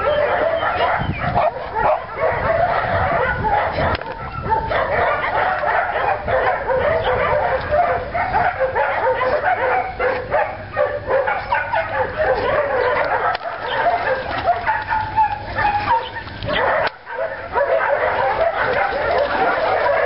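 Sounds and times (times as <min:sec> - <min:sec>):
dogs barking and yipping: 0:00.0 - 0:20.0.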